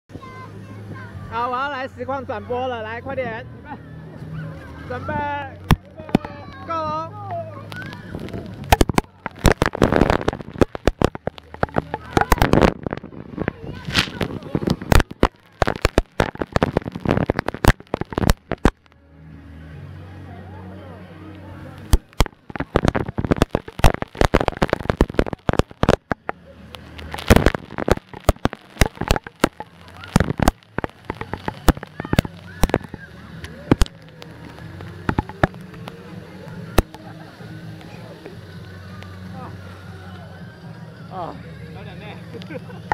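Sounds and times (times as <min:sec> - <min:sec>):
water splashing: 0:04.1 - 0:19.0, 0:21.7 - 0:40.2
water spray hitting camera: 0:07.7 - 0:18.8, 0:21.8 - 0:38.4.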